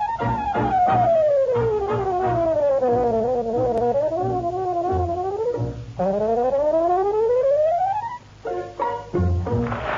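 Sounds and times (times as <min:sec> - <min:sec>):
pulsing bass line: 0:00.0 - 0:08.2.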